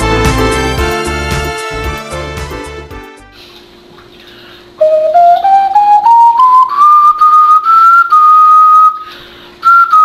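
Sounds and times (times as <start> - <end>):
ocarina note: 4.8 - 9.1.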